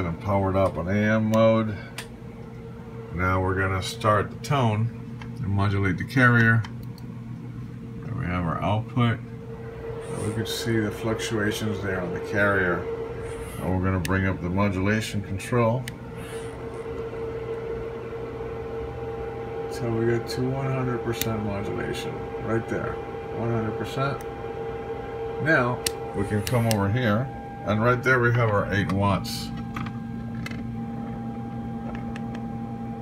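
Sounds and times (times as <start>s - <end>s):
background hum: 0.0s - 33.0s.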